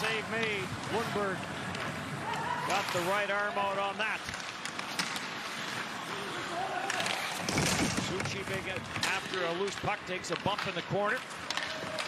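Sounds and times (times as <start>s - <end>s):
arena crowd noise: 0.0s - 4.3s, 5.4s - 12.0s
skates and sticks on ice: 0.0s - 12.0s.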